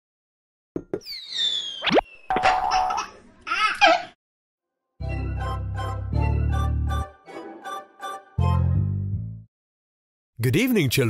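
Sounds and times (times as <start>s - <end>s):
falling whistle: 1.0s - 2.6s
bubbly wobbling chirps: 1.0s - 3.0s
cartoon pops: 1.0s - 3.0s.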